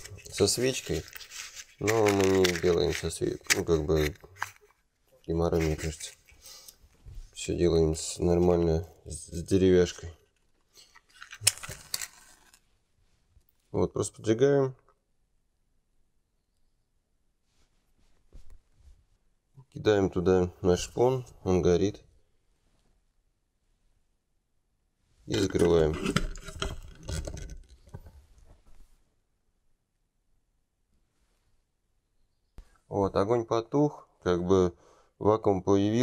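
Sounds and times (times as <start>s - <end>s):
match striking on matchbox: 0.0s - 4.7s, 10.8s - 12.6s
plastic jar lid twisting shut: 0.0s - 4.7s, 25.4s - 28.1s.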